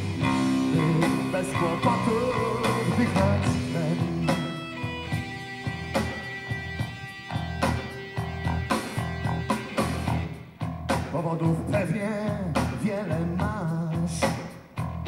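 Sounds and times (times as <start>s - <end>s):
bass guitar: 0.0s - 15.0s
drums: 0.0s - 15.0s
electric guitars: 0.0s - 15.0s.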